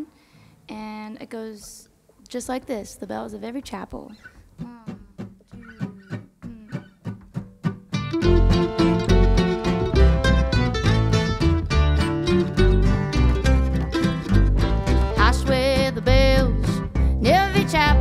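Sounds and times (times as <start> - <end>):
plucked string instrument: 4.6 - 18.0
acoustic string band playing: 7.4 - 18.0.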